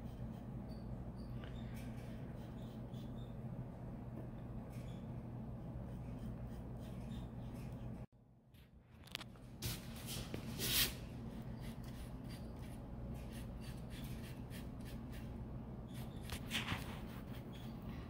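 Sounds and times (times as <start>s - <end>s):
paintbrush strokes scratching: 0.0s - 3.4s, 4.7s - 8.1s, 10.0s - 17.8s
steady low hum: 0.0s - 18.0s.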